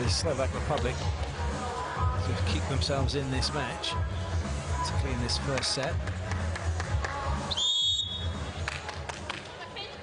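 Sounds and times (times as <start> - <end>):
referee's whistle blast: 7.5 - 8.4.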